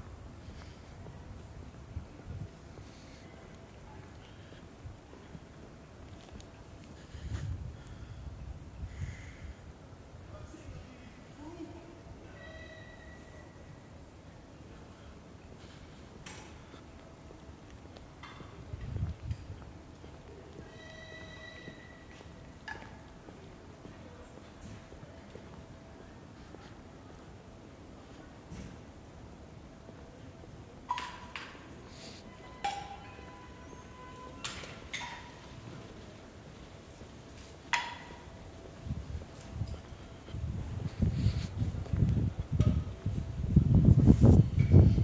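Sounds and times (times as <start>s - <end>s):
train wheels clunking: 30.9s - 40.6s.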